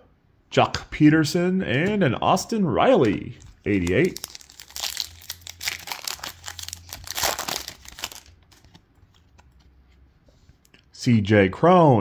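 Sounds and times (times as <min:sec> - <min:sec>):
wrapper being torn and crinkled: 0:03.4 - 0:08.7.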